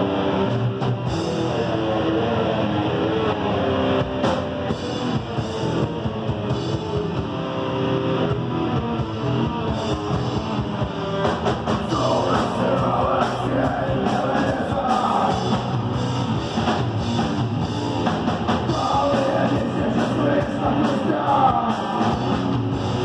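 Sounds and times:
drum kit: 0.0s - 2.3s, 3.7s - 23.0s
bass guitar: 0.0s - 23.0s
distorted electric guitar: 0.0s - 23.0s.

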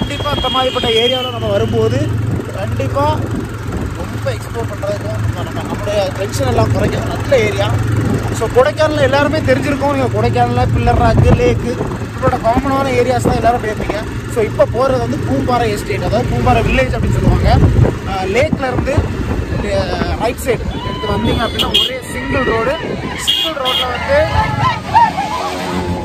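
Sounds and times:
man talking: 0.0s - 3.3s, 4.0s - 24.4s
motorcycle engine humming: 0.0s - 26.0s
wind rumbling on microphone: 2.0s - 4.4s, 16.8s - 23.5s.

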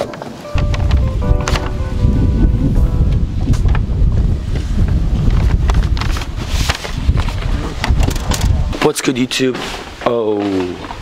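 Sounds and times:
background music: 0.3s - 5.6s
wind buffeting microphone: 0.5s - 9.3s.

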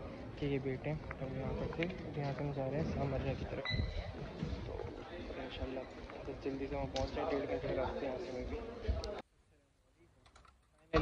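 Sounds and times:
man speaking: 0.2s - 3.6s.

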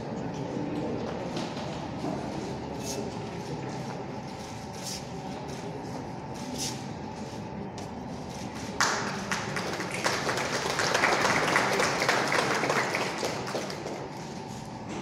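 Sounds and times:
low room murmur: 0.0s - 15.0s
people applauding: 8.8s - 14.4s.

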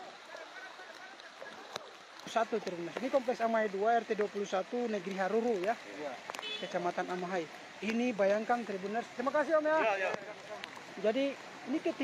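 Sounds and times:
floodwater rushing: 0.0s - 12.0s.

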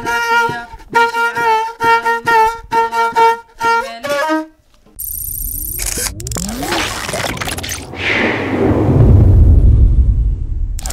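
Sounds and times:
sharp clicks: 5.0s - 6.7s
high repeating warble: 5.0s - 8.0s
rising sweeps: 5.1s - 10.0s
low rumble: 7.1s - 10.9s.

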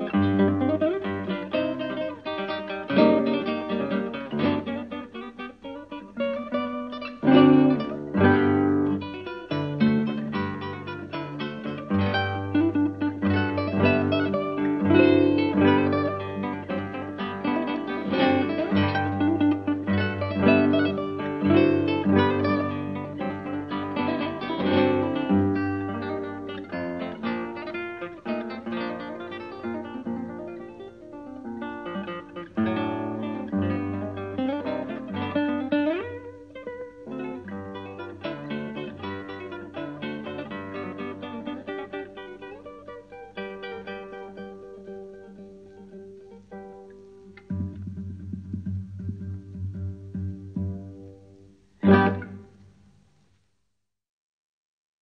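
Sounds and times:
plucked acoustic guitar music: 0.0s - 52.8s.

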